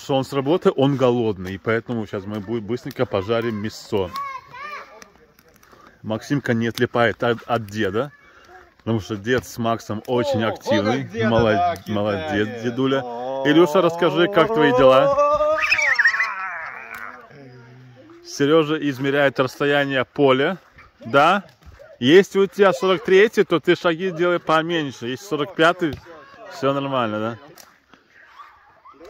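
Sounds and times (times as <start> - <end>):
children calling out: 3.1 - 5.2, 7.8 - 8.8, 12.0 - 18.3, 28.1 - 29.0
high wavering wordless voice: 13.0 - 18.0.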